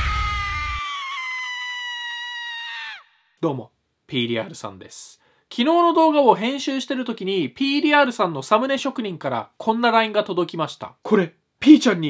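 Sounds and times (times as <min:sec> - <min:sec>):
long high-pitched shriek: 0:00.0 - 0:03.4.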